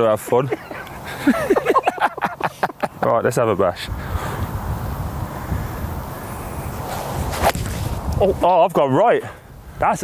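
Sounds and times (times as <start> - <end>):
golf club swish: 6.8 - 8.2.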